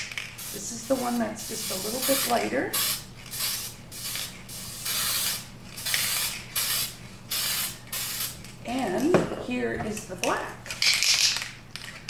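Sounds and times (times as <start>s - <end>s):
spray can hissing bursts: 0.1s - 8.4s.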